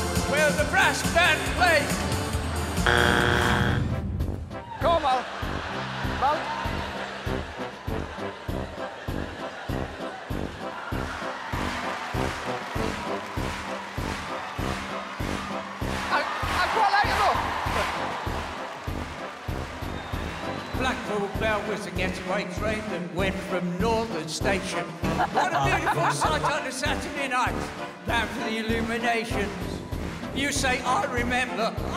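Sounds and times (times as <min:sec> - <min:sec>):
upbeat backing music: 0:00.0 - 0:31.9.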